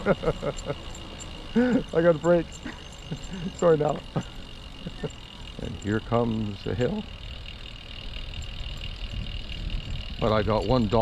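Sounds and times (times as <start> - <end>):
trike rolling rumble: 0.0 - 11.0
wind noise on microphone: 8.1 - 11.0.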